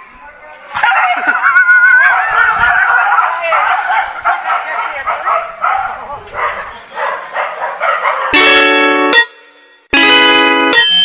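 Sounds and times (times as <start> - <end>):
dog yelping: 0.8 - 8.4.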